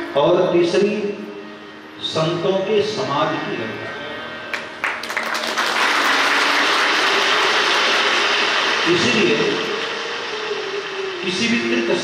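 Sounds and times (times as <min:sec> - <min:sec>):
audience applause: 0:04.5 - 0:12.0.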